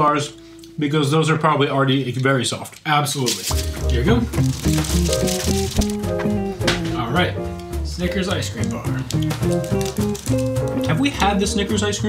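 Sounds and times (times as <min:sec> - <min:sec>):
background music with bass line: 0:03.5 - 0:12.0.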